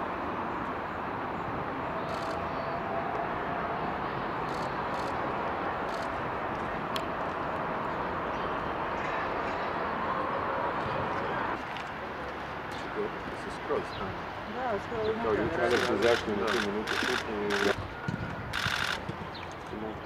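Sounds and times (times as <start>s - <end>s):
low rumble of distant traffic: 0.0s - 20.0s.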